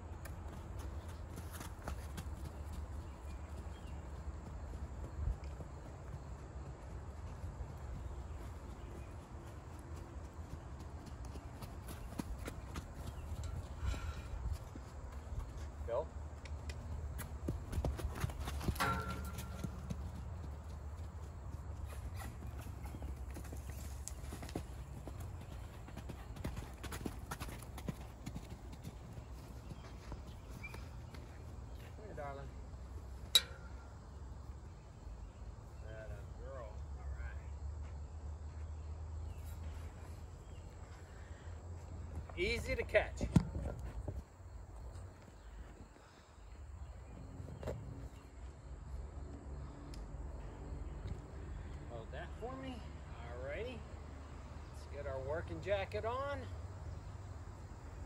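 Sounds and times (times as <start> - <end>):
hoofbeats on dirt: 0.0 - 35.8, 37.4 - 49.8.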